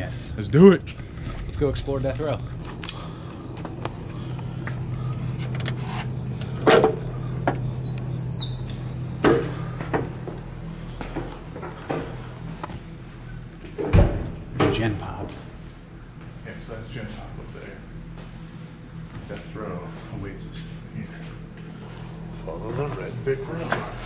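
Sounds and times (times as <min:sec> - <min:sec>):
steady low hum: 0:00.0 - 0:24.0
short high squeak: 0:07.8 - 0:08.8.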